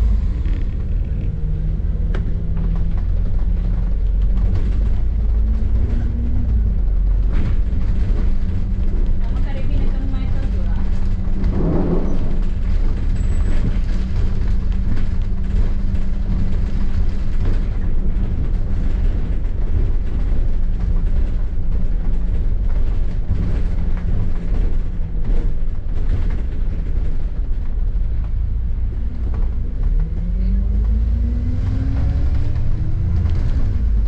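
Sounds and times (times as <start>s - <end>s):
bus engine rumble: 0.0s - 34.0s.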